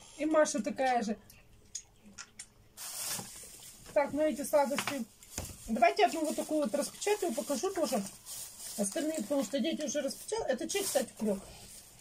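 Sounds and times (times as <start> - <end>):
plastic wrapper crinkling: 2.8 - 12.0.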